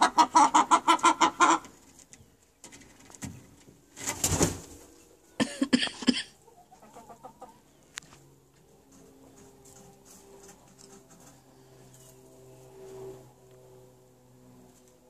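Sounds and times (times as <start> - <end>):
hens clucking: 0.0 - 3.9, 4.7 - 11.4
hens murmuring: 0.0 - 14.1.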